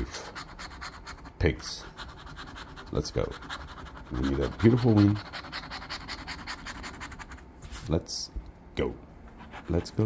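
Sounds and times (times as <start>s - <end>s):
scratching lottery ticket: 0.0s - 7.4s, 9.4s - 10.0s.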